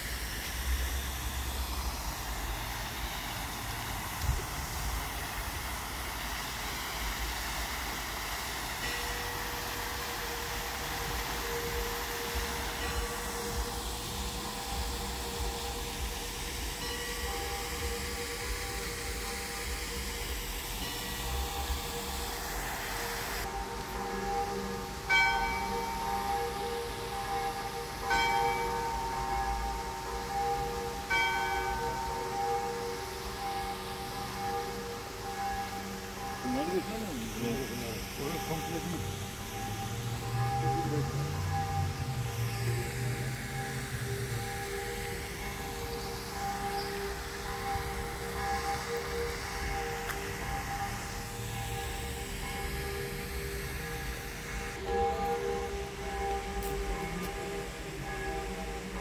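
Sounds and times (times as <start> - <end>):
bells ringing: 0.0 - 59.0.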